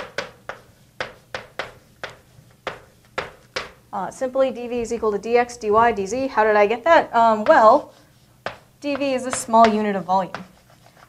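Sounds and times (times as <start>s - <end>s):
chalk tapping on blackboard: 0.0s - 3.8s, 7.4s - 11.0s.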